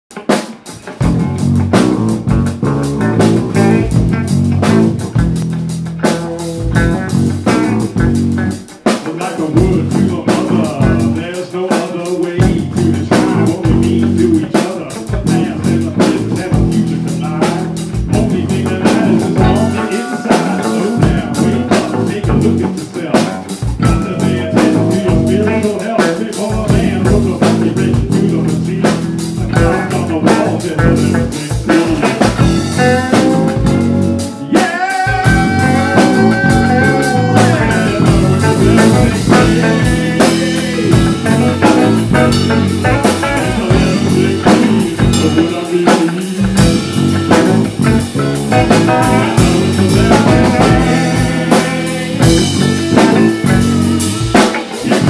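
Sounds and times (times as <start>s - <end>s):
drum kit steady beat: 0.1s - 55.0s
electric guitar: 0.1s - 55.0s.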